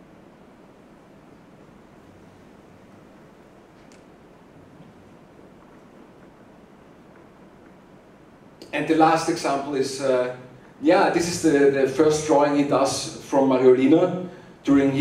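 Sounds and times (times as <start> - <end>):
soft hiss: 0.0 - 15.0
small click: 3.8 - 4.1.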